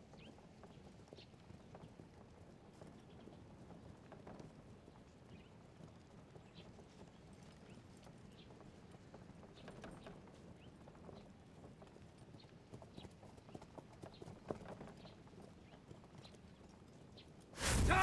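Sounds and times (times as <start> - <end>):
horse hooves clip-clop on dirt: 0.0 - 17.6.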